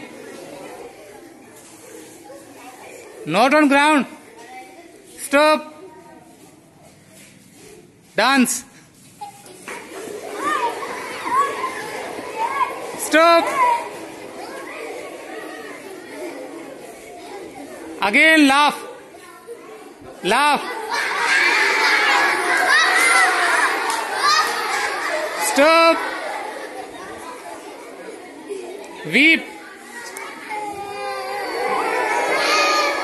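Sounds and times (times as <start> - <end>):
children shouting excitedly: 10.1 - 16.8, 20.3 - 28.9, 29.6 - 33.0.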